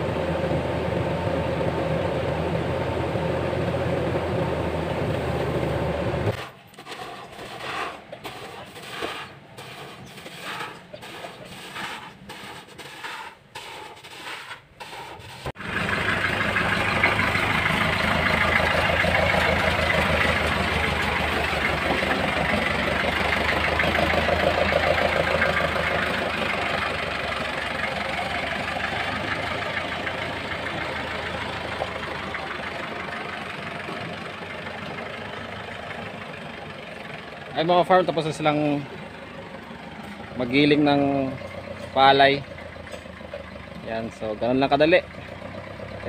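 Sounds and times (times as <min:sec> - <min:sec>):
rice mill machine drone: 0:00.0 - 0:13.2, 0:14.8 - 0:45.4.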